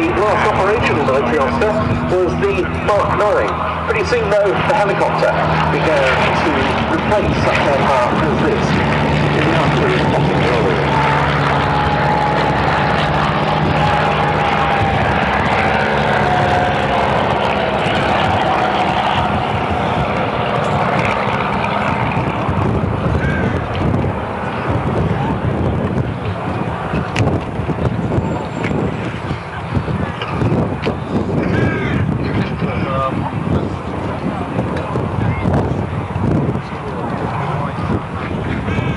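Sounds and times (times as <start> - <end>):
light aircraft engine droning: 0.0 - 38.9.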